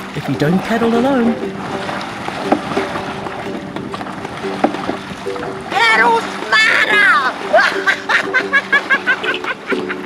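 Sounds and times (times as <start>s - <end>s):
kayak paddling water: 0.0s - 10.0s.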